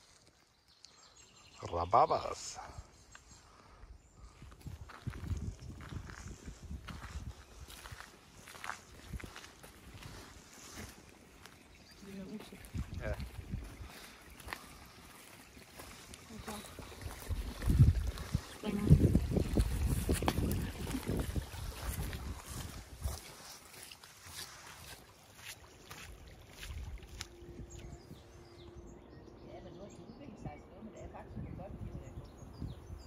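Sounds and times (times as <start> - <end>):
wind rumbling on microphone: 3.8 - 10.9, 11.8 - 14.6, 15.8 - 23.6, 26.1 - 33.0
footsteps crunching on gravel: 4.6 - 27.9.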